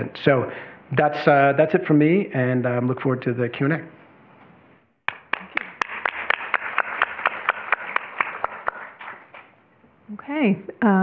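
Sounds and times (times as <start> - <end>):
audience applauding: 5.1 - 9.5.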